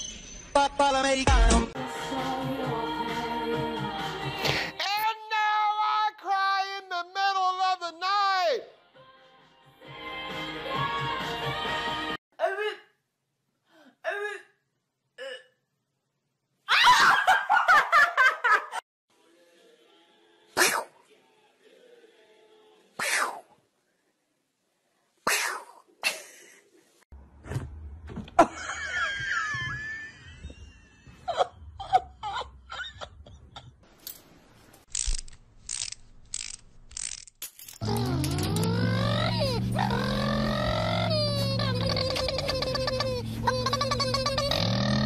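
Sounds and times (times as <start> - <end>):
cat sneezing: 20.6 - 21.0, 23.0 - 23.5, 25.2 - 25.8.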